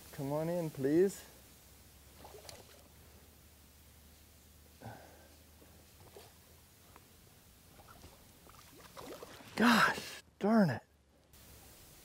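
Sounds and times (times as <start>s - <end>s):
fish splashing in water: 7.8s - 9.6s.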